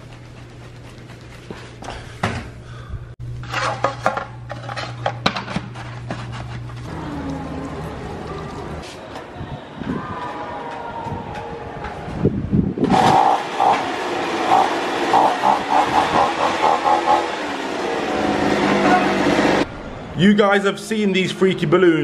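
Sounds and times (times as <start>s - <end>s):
leaf blower engine revving: 12.8s - 19.7s.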